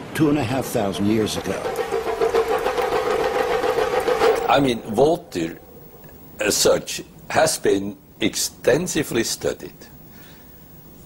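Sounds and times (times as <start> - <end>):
steady machine-like buzz: 1.4 - 6.7.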